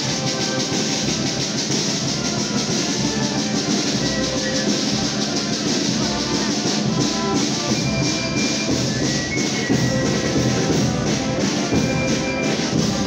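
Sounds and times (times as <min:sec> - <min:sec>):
procession band playing: 0:00.0 - 0:13.0.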